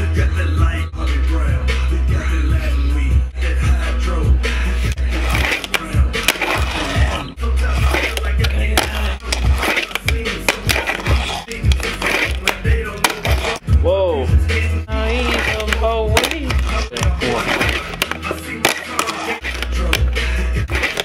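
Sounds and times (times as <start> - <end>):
person singing: 0.0 - 13.6, 14.3 - 21.0
loud music with deep bass: 0.0 - 21.0
fingerboard rolling on wooden ramp: 4.8 - 13.6.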